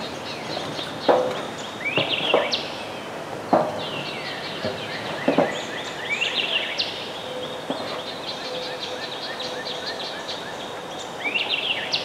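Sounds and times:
songbirds singing and chirping: 0.0s - 12.0s
steady background hiss: 0.0s - 12.0s.

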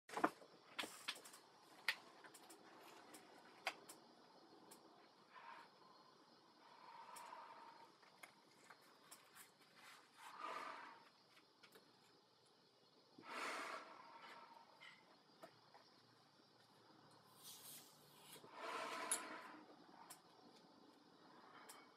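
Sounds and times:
breathing in gas mask: 6.6s - 8.7s, 9.8s - 11.2s, 13.2s - 15.0s, 17.4s - 20.1s.

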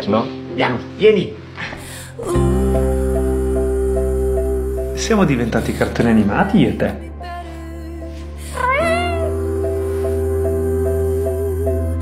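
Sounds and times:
slow background music: 0.0s - 12.0s
cat meowing: 8.6s - 9.4s.

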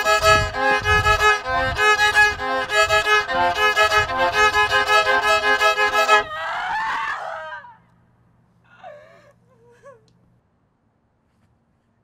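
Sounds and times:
wavering falling scream: 6.1s - 7.9s.

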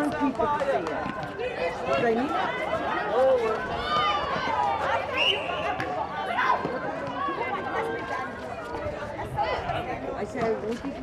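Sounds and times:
people calling out and chattering: 0.0s - 11.0s
running footsteps on court: 0.0s - 11.0s.

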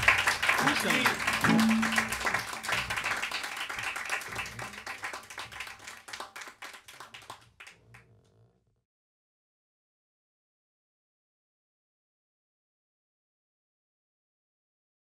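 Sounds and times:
audience applauding: 0.0s - 7.8s.

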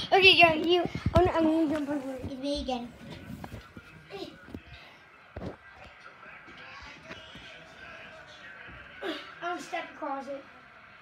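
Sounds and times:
muffled children's voices: 0.0s - 11.0s.

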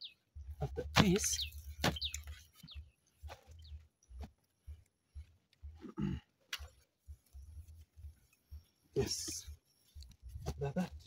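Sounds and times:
faint bird chirps: 0.0s - 11.0s
low grunt: 5.8s - 6.4s.

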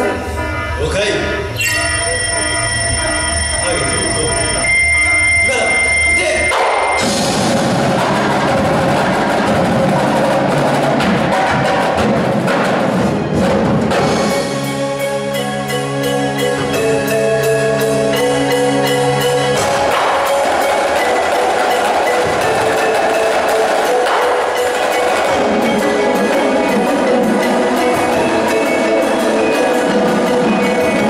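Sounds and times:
marching drums rolling: 5.6s - 14.7s, 19.5s - 31.0s
marching snare drums: 6.6s - 14.4s.

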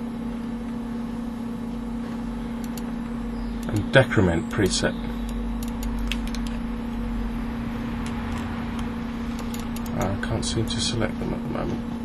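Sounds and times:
background hum and hiss: 0.0s - 12.0s
computer mouse clicking: 2.6s - 2.9s, 5.3s - 6.6s, 8.0s - 10.1s.

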